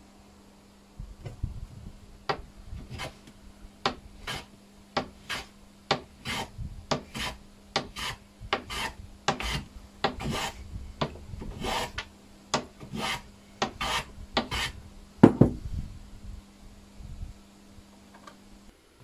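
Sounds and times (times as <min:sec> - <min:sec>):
hand plane shaving wood: 0:02.8 - 0:03.2, 0:04.2 - 0:04.5, 0:05.1 - 0:05.5, 0:06.2 - 0:10.6, 0:11.5 - 0:12.0, 0:12.8 - 0:14.8.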